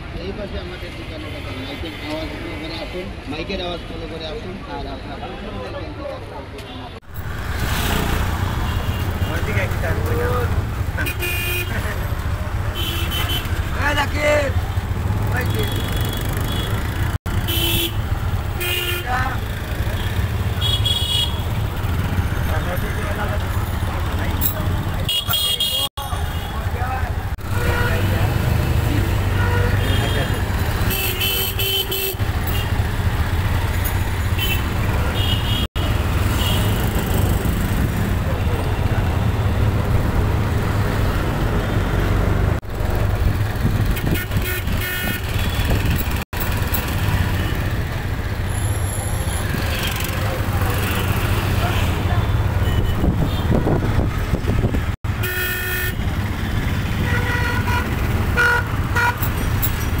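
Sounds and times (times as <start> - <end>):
traffic engine rumble: 0.0 - 60.0.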